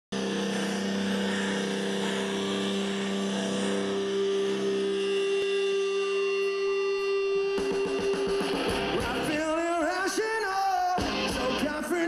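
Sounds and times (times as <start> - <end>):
distorted electric guitar chord: 0.1 - 12.0.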